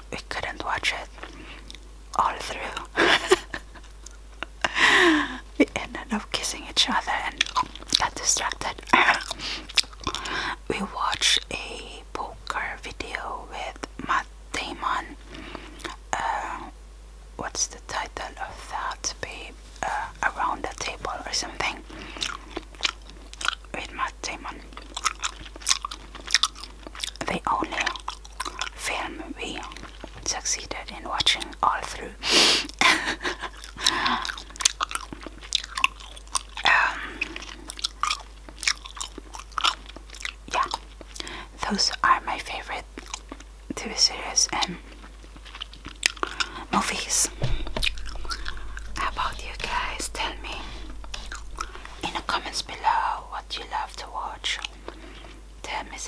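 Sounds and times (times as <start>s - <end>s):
gum chewing mouth smacks: 7.4s - 10.4s, 22.0s - 23.8s, 24.5s - 28.8s, 29.6s - 30.3s, 33.4s - 41.3s, 43.0s - 43.5s, 44.5s - 52.7s.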